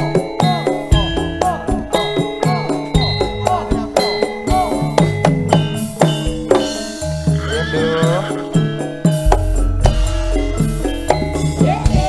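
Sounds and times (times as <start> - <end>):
band music: 0.0 - 12.0
high wavering gliding melody: 0.0 - 12.0
sustained bass notes: 0.9 - 12.0
sharp drum strokes: 2.6 - 12.0.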